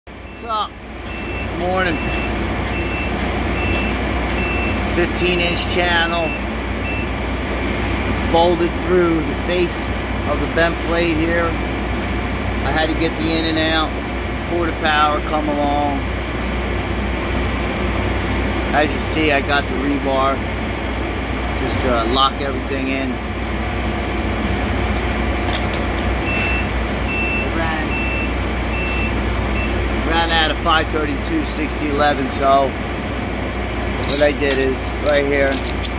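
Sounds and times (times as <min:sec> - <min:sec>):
low engine rumble: 0:00.1 - 0:35.9
reversing alarm beeps: 0:00.2 - 0:04.9, 0:06.2 - 0:07.1, 0:26.2 - 0:29.8.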